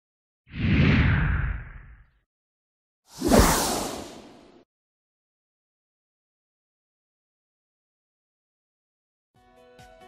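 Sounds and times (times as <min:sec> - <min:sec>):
whoosh sound effect: 0:03.1 - 0:04.6.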